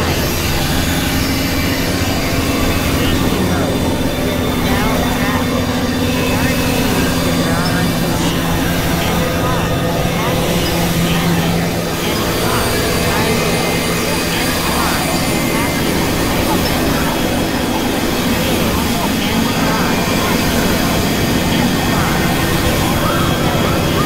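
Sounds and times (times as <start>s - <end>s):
synthesizer drone noise music: 0.0s - 24.0s.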